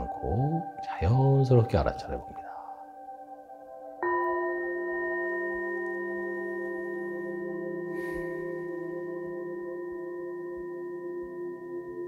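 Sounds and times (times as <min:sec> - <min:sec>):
singing bowl ringing: 0:03.2 - 0:12.0.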